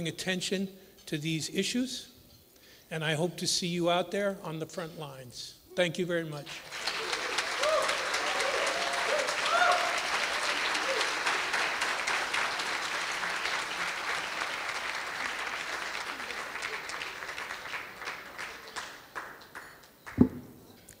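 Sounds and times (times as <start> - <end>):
audience applauding: 6.5 - 20.4.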